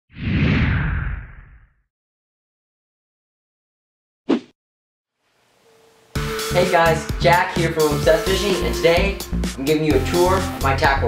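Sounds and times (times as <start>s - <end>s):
whoosh with deep rumble: 0.1s - 1.8s.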